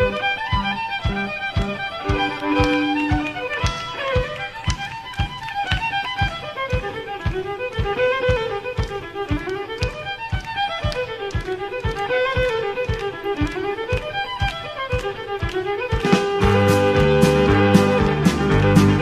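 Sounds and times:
western swing band with fiddle: 0.0 - 19.0.

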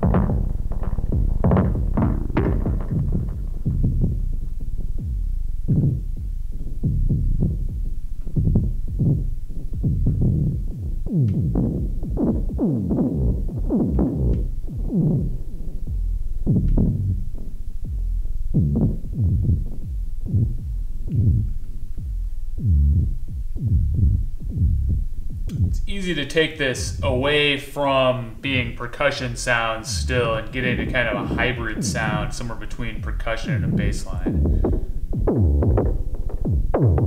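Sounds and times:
synthesized drum thuds: 0.0 - 37.0.

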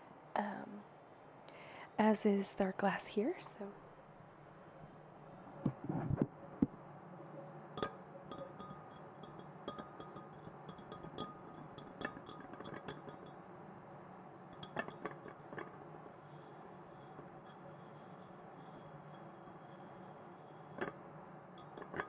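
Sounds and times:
faint steady tone: 6.4 - 22.0
fingers tapping glass vessel: 7.8 - 13.4, 14.6 - 21.0, 21.6 - 22.0.

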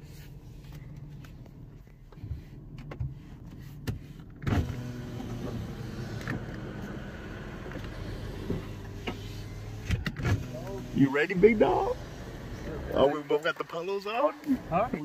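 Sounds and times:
car idling hum: 0.0 - 15.0
power window motor whirring: 2.5 - 13.1.

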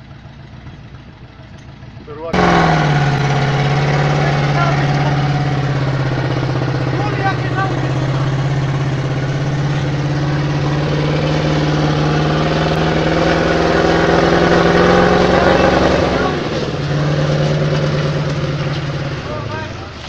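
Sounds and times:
truck engine under load: 0.0 - 20.0.

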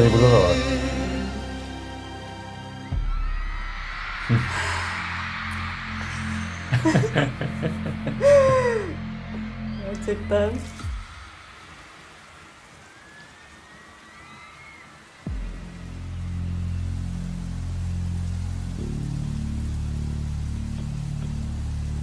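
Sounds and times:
low sustained music chords: 0.0 - 12.8, 15.3 - 22.0
rain hiss: 0.0 - 22.0.

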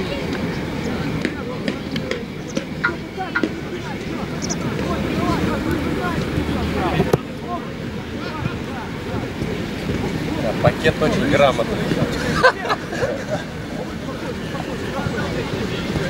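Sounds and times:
low outdoor rumble: 0.0 - 16.0
overlapping voices chattering: 0.0 - 16.0.

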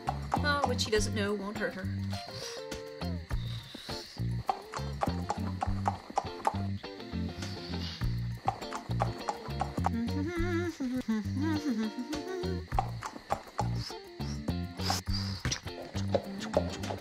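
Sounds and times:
background music with bass line: 4.2 - 13.0, 13.6 - 17.0.

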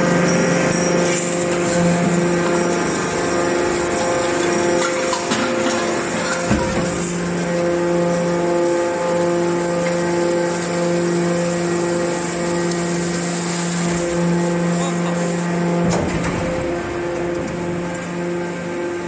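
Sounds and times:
hydraulic compactor pump hum: 0.0 - 19.0.

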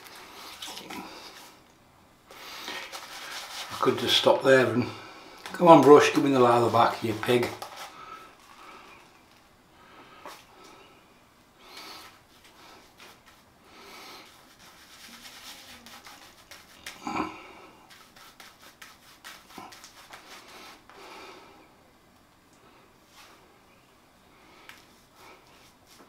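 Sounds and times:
shaving brush swishing on skin: 2.7 - 4.5, 5.4 - 8.5, 12.0 - 13.5, 14.2 - 20.9.

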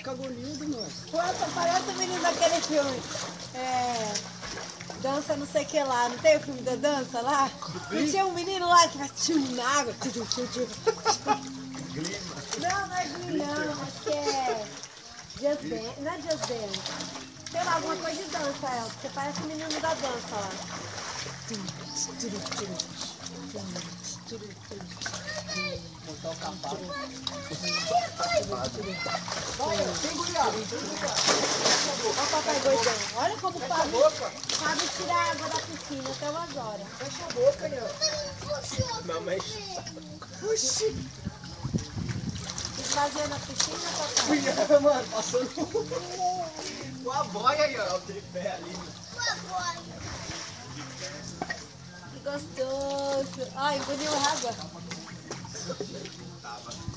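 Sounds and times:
children and adults talking: 0.0 - 56.9
water splashing: 0.0 - 56.9.

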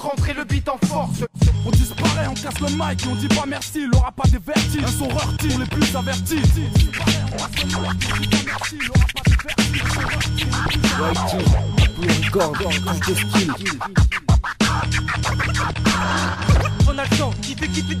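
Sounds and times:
hip-hop beat: 0.0 - 18.0
steady bass line: 1.1 - 3.8, 4.5 - 8.6, 9.5 - 18.0
record scratching on a turntable: 4.6 - 17.0.

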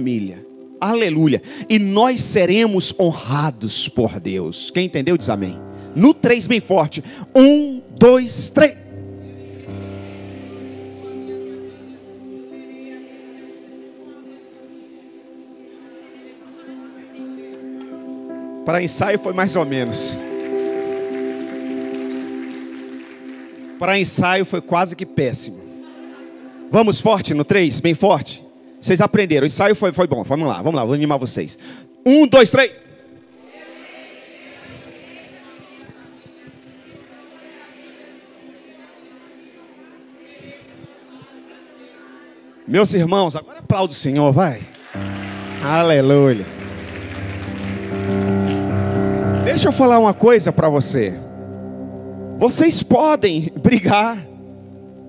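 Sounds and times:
keyboard chord: 0.0 - 33.5, 38.4 - 55.0
congregation applause: 18.7 - 25.0, 44.5 - 51.2.

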